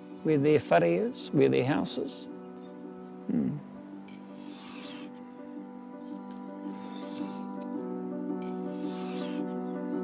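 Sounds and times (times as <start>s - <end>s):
background music low tones: 0.0s - 10.0s
knife on sharpening stone: 4.1s - 5.2s, 6.1s - 7.7s, 8.4s - 9.5s.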